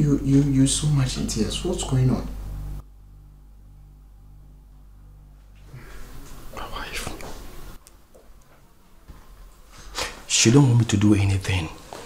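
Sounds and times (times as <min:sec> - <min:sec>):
low room hum: 0:00.0 - 0:12.0
man whispering: 0:06.5 - 0:07.4.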